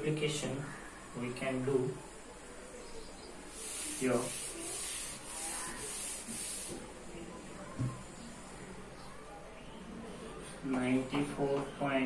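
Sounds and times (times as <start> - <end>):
duster wiping a chalkboard: 3.5 - 7.1.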